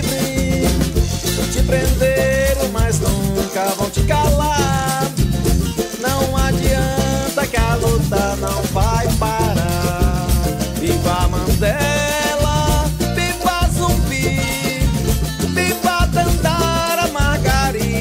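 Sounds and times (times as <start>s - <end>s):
upbeat latin-style music: 0.0s - 18.0s.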